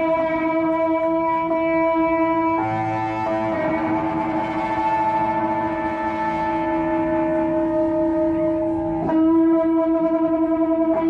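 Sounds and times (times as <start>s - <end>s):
electric guitar droning chord: 0.0s - 11.0s.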